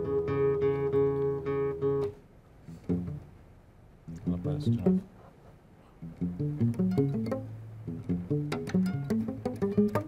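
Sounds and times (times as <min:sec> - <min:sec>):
low plucked guitar notes: 0:00.0 - 0:03.4, 0:04.0 - 0:05.1, 0:06.0 - 0:10.0.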